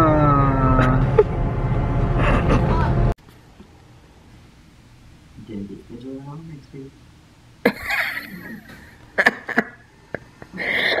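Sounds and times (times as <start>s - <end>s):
person laughing: 0.6s - 1.4s, 2.2s - 3.0s, 7.7s - 11.0s.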